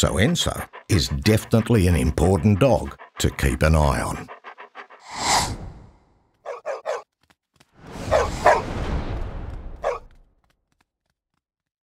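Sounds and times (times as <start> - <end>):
rushing sound: 5.0 - 5.8
dog barking: 6.4 - 7.0, 8.1 - 8.7, 9.8 - 10.1.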